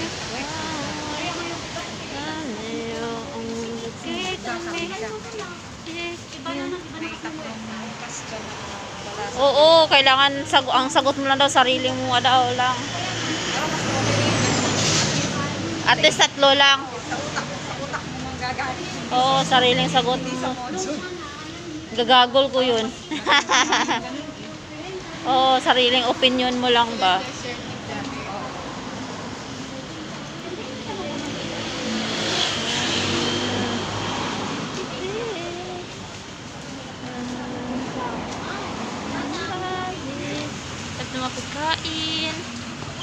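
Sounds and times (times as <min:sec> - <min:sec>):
vehicle engine and tyre noise: 0:00.0 - 0:23.1, 0:24.2 - 0:43.0.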